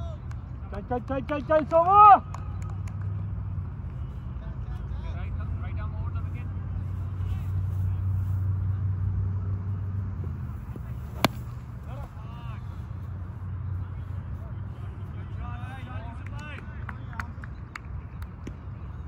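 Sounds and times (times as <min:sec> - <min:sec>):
faint distant voices: 0:02.4 - 0:19.0
sharp crack: 0:11.1 - 0:11.8.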